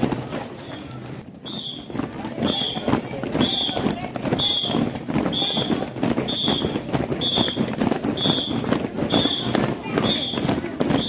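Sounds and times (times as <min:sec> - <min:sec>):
children marching on concrete: 0:00.0 - 0:11.0
whistle short blasts: 0:01.4 - 0:01.9, 0:04.4 - 0:07.6, 0:08.2 - 0:08.6.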